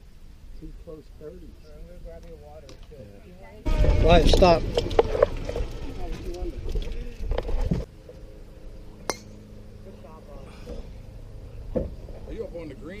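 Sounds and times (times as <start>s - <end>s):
voices: 0.5s - 13.0s
low rumbling noise: 3.6s - 13.0s.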